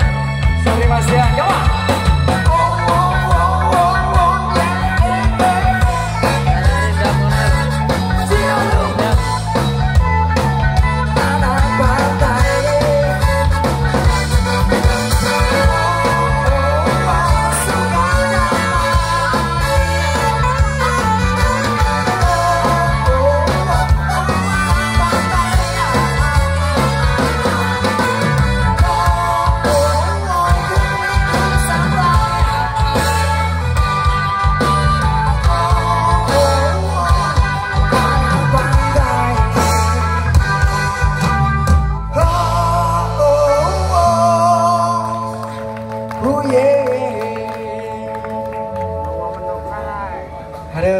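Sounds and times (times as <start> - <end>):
drum kit beat: 0.0 - 44.5
held melody line with vibrato: 0.0 - 50.9
live rock band playing: 0.0 - 50.9.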